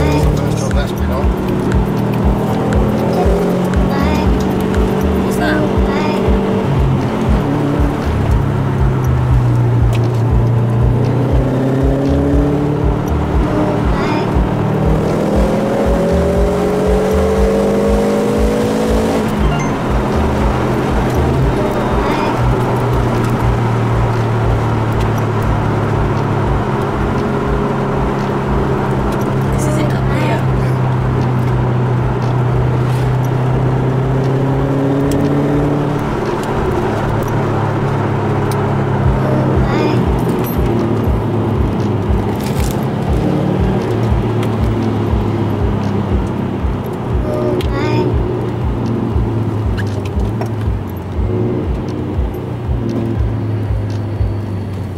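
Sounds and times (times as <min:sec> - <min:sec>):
car engine drone: 0:00.0 - 0:54.9
road noise: 0:00.0 - 0:54.9.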